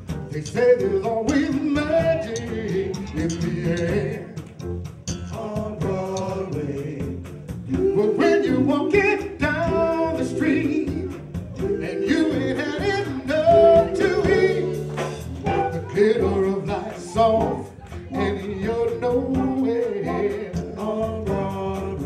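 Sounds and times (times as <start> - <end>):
drum kit with cymbal beat: 0.0 - 22.0
keyboard: 0.0 - 22.0
male vocal group singing harmony: 0.4 - 4.4, 5.3 - 22.0.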